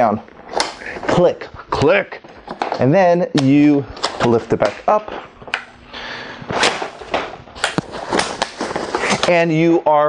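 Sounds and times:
rustling handling noise: 0:06.4 - 0:09.5.

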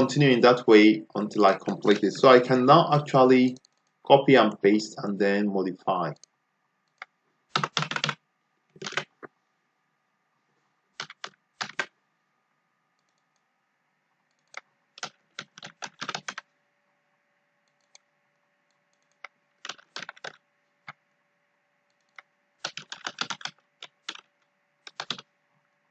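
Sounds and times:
keyboard typing: 0:03.5 - 0:04.0, 0:06.1 - 0:09.3, 0:11.0 - 0:11.9, 0:13.0 - 0:13.4, 0:14.3 - 0:16.5, 0:18.9 - 0:21.0, 0:21.9 - 0:25.3.

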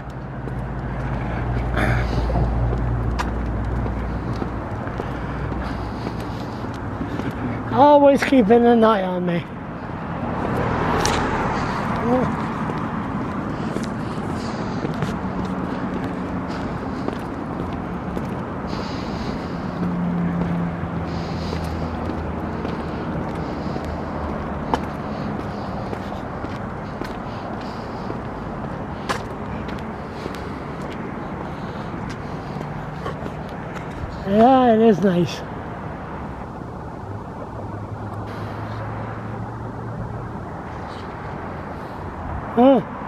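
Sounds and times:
passing vehicle engines: 0:00.0 - 0:43.0
tyres hissing on highway: 0:00.1 - 0:43.0.

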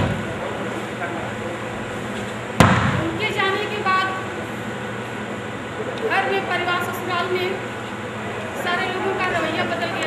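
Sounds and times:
background hum and hiss: 0:00.0 - 0:10.0
woman speaking: 0:03.0 - 0:04.3, 0:06.1 - 0:07.6, 0:08.6 - 0:10.0.

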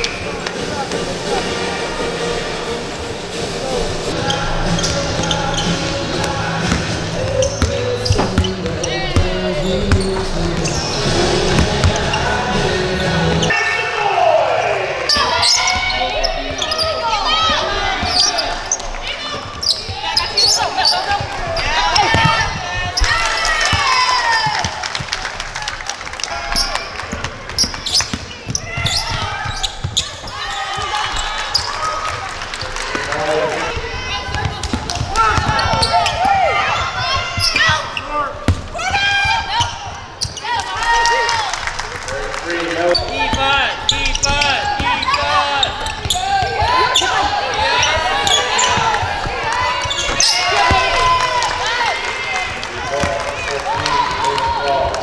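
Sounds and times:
players calling out: 0:04.0 - 0:55.0
basketball bouncing on hardwood court: 0:06.6 - 0:10.8, 0:33.8 - 0:39.8.

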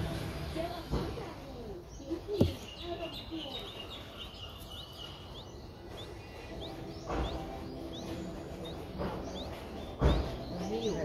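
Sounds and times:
small bird chirping: 0:01.4 - 0:11.0
dull thump: 0:02.4 - 0:02.7, 0:08.9 - 0:10.6.

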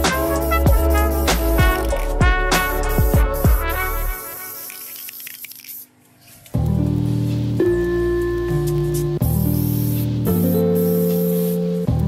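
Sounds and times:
background music with held chords: 0:00.0 - 0:04.5, 0:06.6 - 0:12.0
spray paint can hissing: 0:00.0 - 0:06.4, 0:08.8 - 0:11.8.

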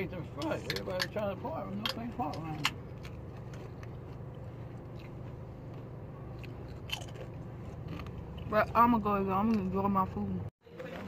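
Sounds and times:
steady low hum: 0:00.0 - 0:11.0
person chewing and crunching food: 0:02.3 - 0:09.8.

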